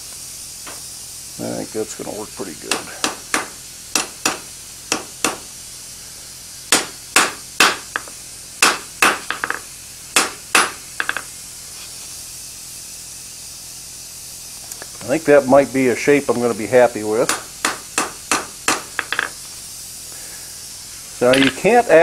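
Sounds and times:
hammer striking hot steel on anvil: 2.7 - 5.5, 6.7 - 11.3, 17.2 - 19.4.

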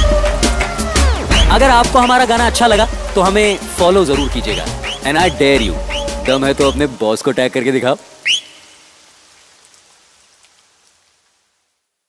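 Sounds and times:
faint rain: 1.8 - 12.0.

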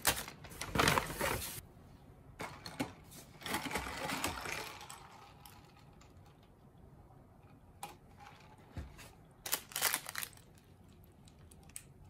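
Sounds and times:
paper bag crinkling: 9.4 - 10.7.

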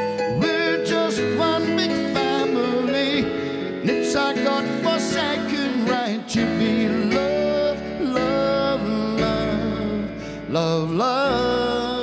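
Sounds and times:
grand piano: 0.0 - 12.0
man singing pop ballad: 0.0 - 12.0.

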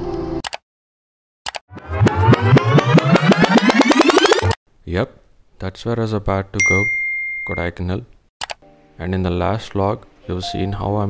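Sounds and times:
rising stuttering whir: 1.7 - 4.6.

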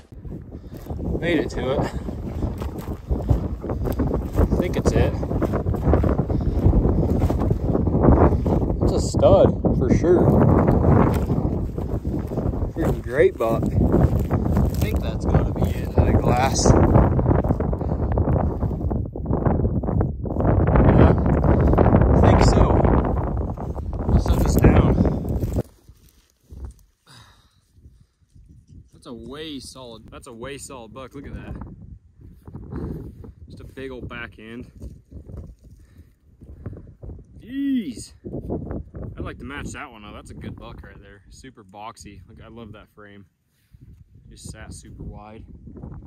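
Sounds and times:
wind buffeting microphone: 0.0 - 46.0
brushy rustle: 0.2 - 8.8, 10.1 - 18.7, 21.5 - 28.9.

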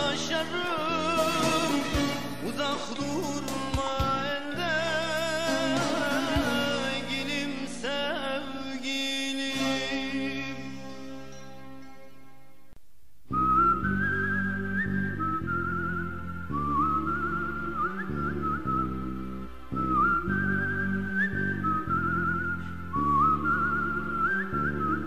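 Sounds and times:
high whistle-like melody with trills: 13.3 - 25.0
steady chordal backing: 13.5 - 25.0.

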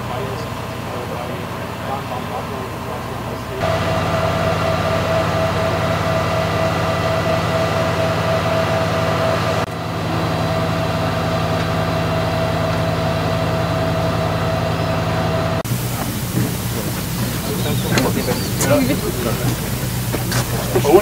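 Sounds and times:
constant high whine: 0.0 - 21.0
power generators droning: 0.0 - 21.0.

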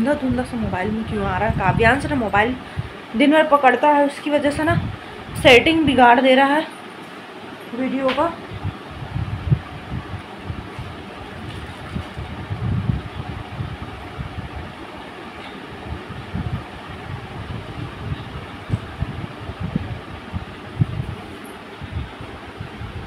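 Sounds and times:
airflow buffeting microphone: 0.0 - 23.0
room fan whooshing: 0.0 - 23.0.

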